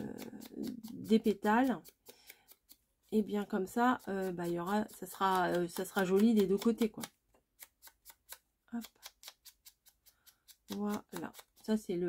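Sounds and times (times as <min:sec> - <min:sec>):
foam tool tapping paper: 0:00.0 - 0:12.0.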